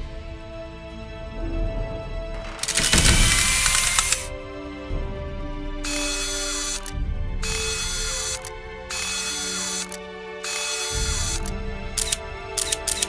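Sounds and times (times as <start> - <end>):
background music with sustained tones: 0.0 - 13.0
mechanical sound effect bursts: 2.6 - 4.3, 7.5 - 13.0.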